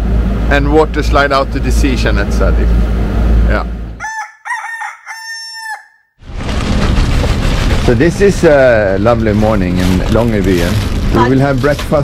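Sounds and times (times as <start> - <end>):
rooster crowing: 4.0 - 6.1.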